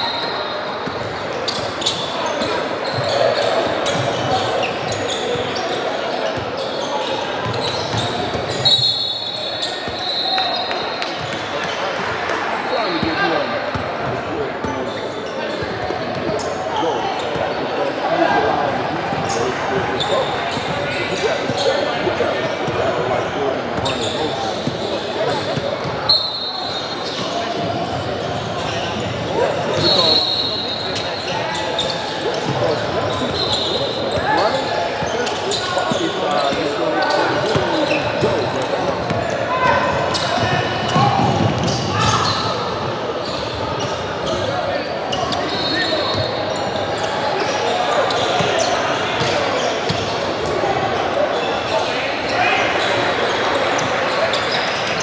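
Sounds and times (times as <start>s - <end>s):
sneaker squeaks: 0.0s - 12.0s, 12.6s - 55.0s
basketball bouncing on court: 40.0s - 42.4s.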